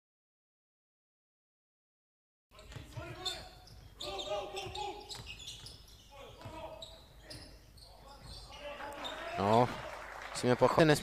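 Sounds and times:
sneaker squeaks: 0:02.6 - 0:09.5
players calling out: 0:02.7 - 0:10.1.

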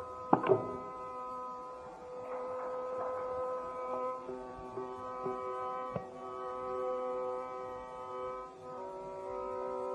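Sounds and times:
music drone of held pitches: 0:00.0 - 0:09.9
soft sustained note: 0:00.0 - 0:09.9.

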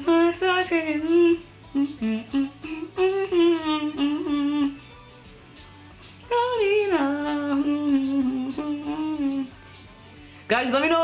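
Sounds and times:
woman humming: 0:00.0 - 0:04.9, 0:06.3 - 0:09.6.

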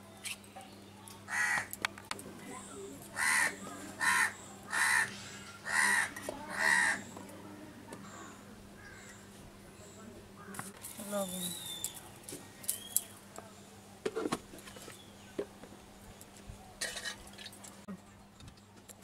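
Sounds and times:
crow cawing: 0:01.3 - 0:01.7, 0:03.2 - 0:07.1, 0:08.2 - 0:09.2.

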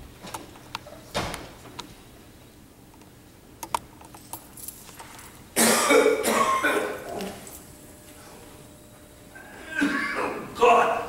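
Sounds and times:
person coughing hard: 0:05.6 - 0:07.4, 0:09.6 - 0:10.5.

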